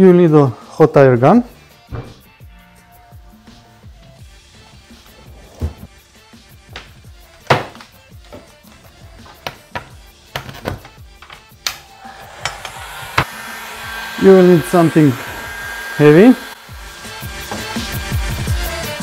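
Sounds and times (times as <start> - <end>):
quiet background music: 0.0 - 13.3
knocks and clatter on workbench: 6.7 - 8.5, 9.2 - 11.5
heat gun blowing: 11.6 - 19.0.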